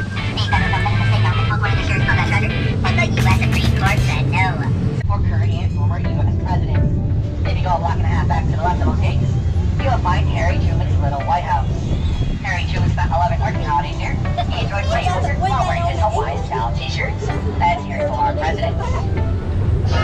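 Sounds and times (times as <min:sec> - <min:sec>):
indistinct talking: 0:00.0 - 0:11.8, 0:12.4 - 0:20.0
tour tram rumbling: 0:00.0 - 0:20.0.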